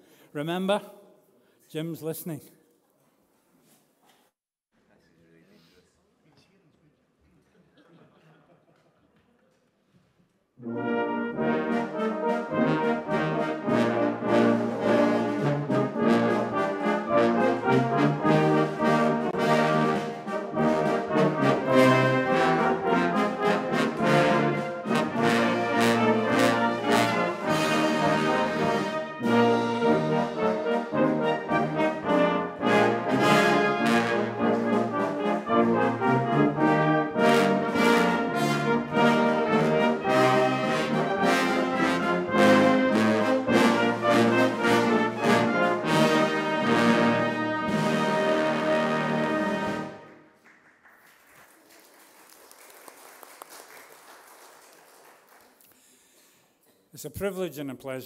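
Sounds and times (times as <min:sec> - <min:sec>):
brass band playing: 0:10.6 - 0:50.3.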